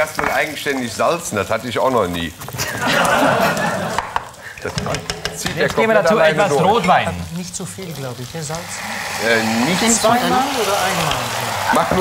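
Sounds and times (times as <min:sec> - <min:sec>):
syrup bubbling and sizzling in a pan: 0:00.0 - 0:12.0.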